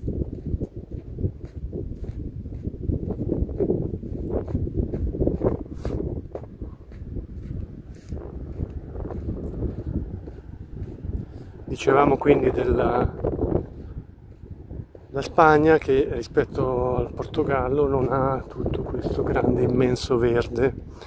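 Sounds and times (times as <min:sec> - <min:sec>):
footsteps in dry sand: 0:00.0 - 0:21.0
wind buffeting microphone: 0:00.0 - 0:21.0.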